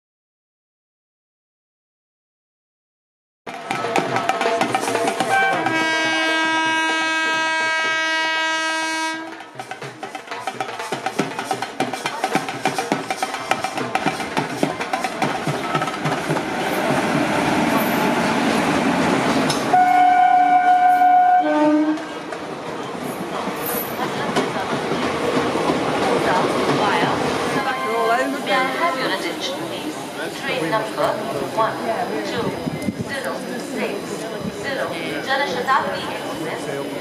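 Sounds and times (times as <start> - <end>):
train wheels rumbling on rails: 3.5 - 37.0
train horn blast: 5.2 - 9.6, 19.7 - 22.2.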